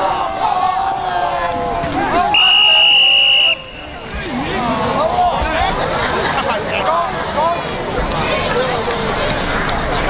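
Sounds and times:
crowd chatter: 0.0 - 10.0
referee's whistle: 2.3 - 4.1.

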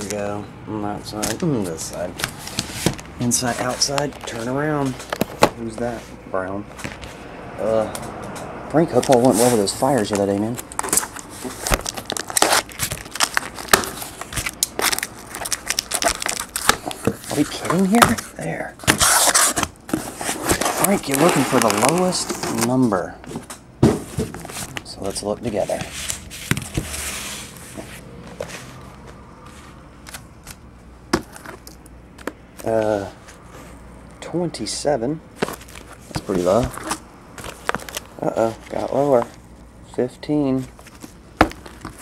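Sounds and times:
cardboard rustling: 1.1 - 7.2, 8.8 - 33.8, 35.3 - 39.4, 40.6 - 42.0
scissors cutting packing tape: 9.0 - 18.2.

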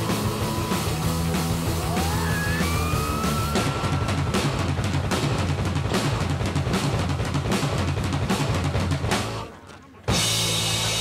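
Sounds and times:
bass drum and snare beating: 0.0 - 9.5
loud rock music: 0.0 - 11.0.

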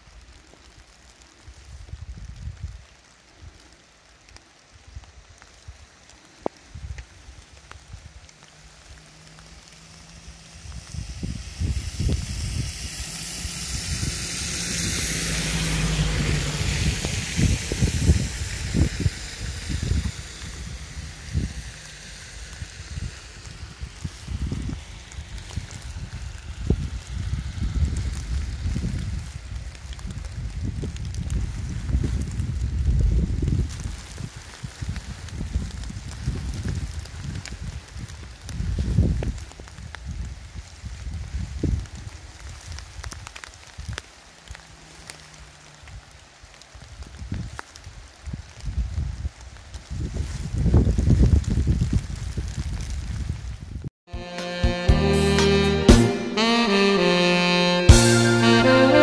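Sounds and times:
vehicle passing on wet road: 0.0 - 59.0
wind buffeting microphone: 1.5 - 3.6, 4.8 - 44.6, 45.8 - 53.9.

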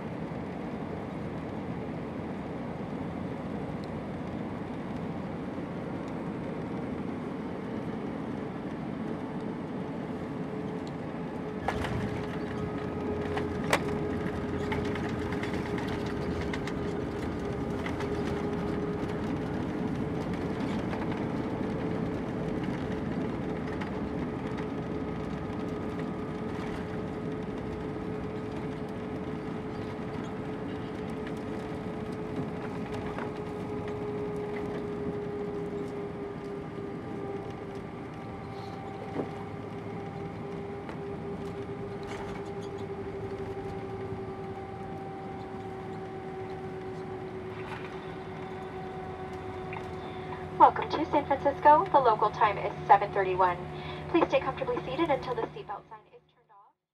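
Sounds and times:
jet engines droning: 0.0 - 56.2
runway rumble: 0.1 - 56.2.

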